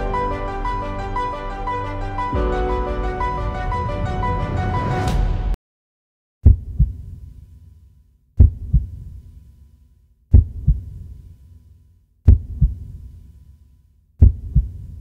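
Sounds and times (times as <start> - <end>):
deep heartbeat thumps: 6.4 - 7.2, 8.4 - 9.2, 10.3 - 11.1, 12.3 - 13.0, 14.2 - 15.0.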